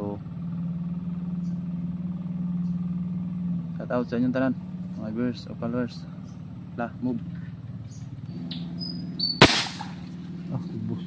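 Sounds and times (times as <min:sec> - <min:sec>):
airgun shot: 0:09.4 - 0:10.1.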